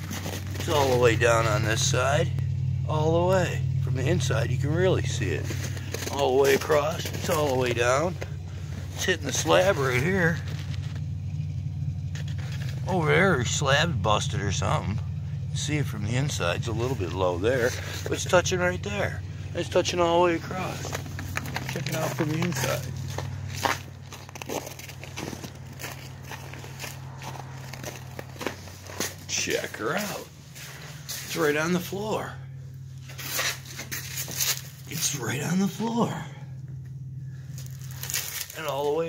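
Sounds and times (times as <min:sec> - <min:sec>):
handling noise: 0:00.0 - 0:01.8, 0:05.2 - 0:11.2, 0:20.3 - 0:32.1, 0:33.0 - 0:35.0
footsteps crunching: 0:00.0 - 0:02.8, 0:03.6 - 0:12.9, 0:15.4 - 0:35.8, 0:36.7 - 0:39.0
low mechanical drone: 0:00.0 - 0:39.0
steady low hum: 0:00.0 - 0:39.0.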